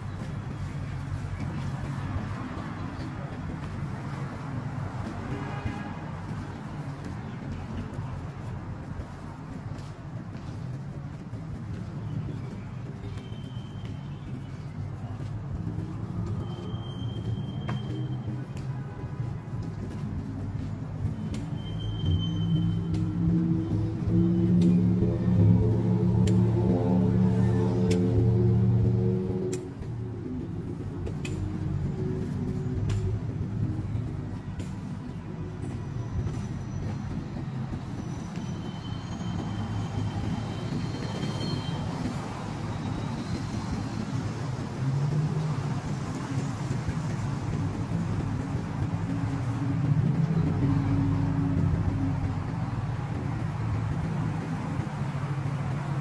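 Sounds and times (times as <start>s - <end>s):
city street traffic: 0.0s - 56.0s
music: 0.0s - 56.0s
vehicle engine hum: 0.0s - 56.0s.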